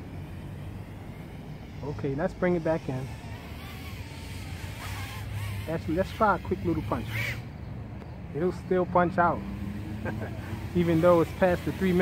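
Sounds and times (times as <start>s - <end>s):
quadcopter motors whining: 0.0s - 12.0s.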